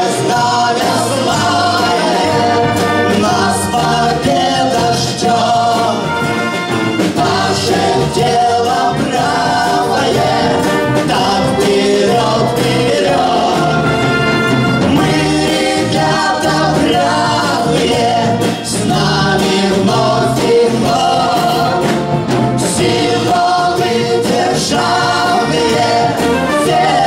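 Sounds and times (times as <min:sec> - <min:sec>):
orchestra with brass and strings: 0:00.0 - 0:27.0
voices singing: 0:00.0 - 0:27.0.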